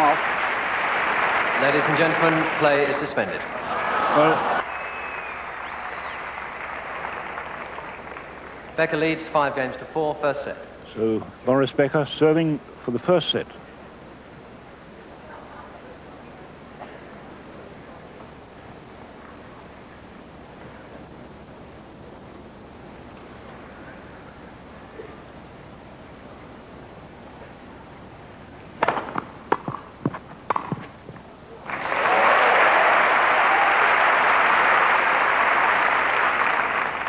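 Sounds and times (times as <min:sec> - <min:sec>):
crowd applause: 0:00.0 - 0:08.9, 0:31.6 - 0:37.0
tennis racket hitting ball: 0:28.8 - 0:31.0.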